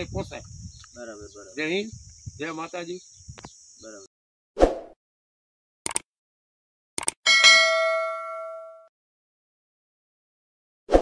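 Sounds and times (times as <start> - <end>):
bell-like notification ding: 7.3 - 8.9.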